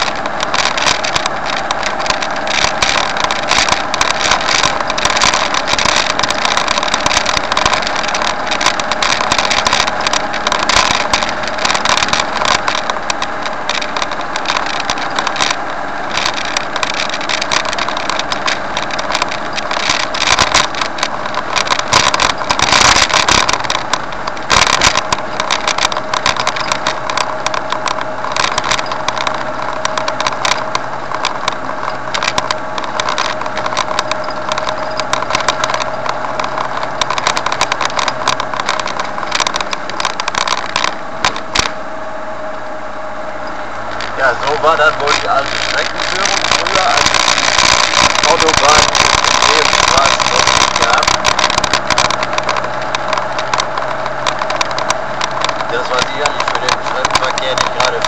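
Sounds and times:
short crackles: 0:00.0 - 0:58.0
vehicle engine and road noise: 0:00.0 - 0:58.0.

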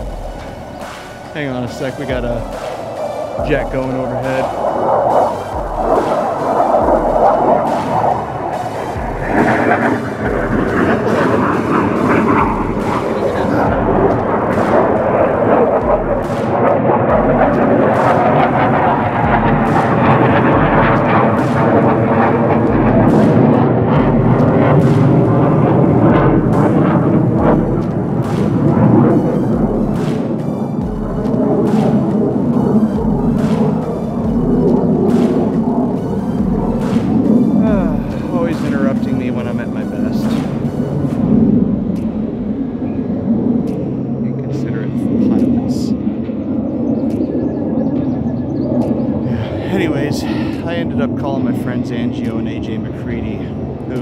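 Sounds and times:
jet aircraft passing overhead: 0:00.0 - 0:54.0.

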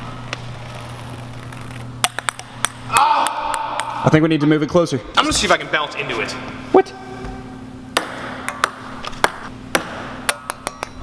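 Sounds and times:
ping-pong ball bouncing on wood: 0:08.0 - 0:11.0.

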